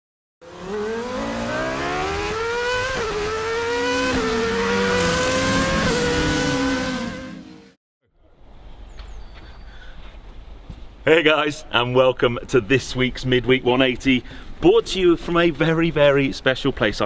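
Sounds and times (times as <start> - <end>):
car engine accelerating: 0.4 - 7.8.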